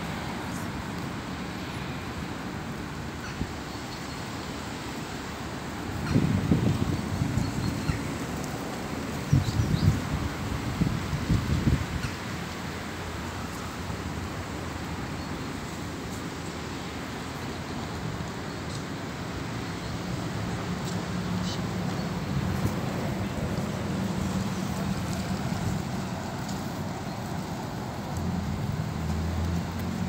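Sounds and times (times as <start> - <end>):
distant traffic hiss: 0.0 - 30.0
wind buffeting microphone: 6.0 - 8.4, 9.2 - 12.2.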